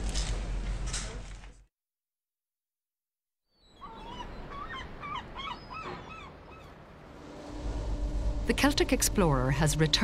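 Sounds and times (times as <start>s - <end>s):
gulls calling: 3.6s - 7.2s
low background rumble: 6.4s - 10.0s.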